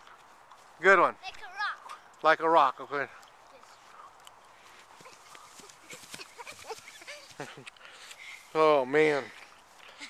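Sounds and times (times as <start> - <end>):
body brushing over grass: 4.6 - 9.8.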